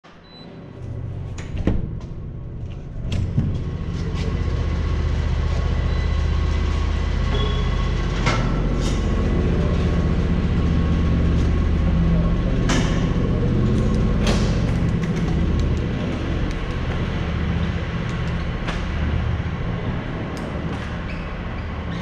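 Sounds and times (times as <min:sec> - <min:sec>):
bicycle rolling: 0:13.2 - 0:21.9.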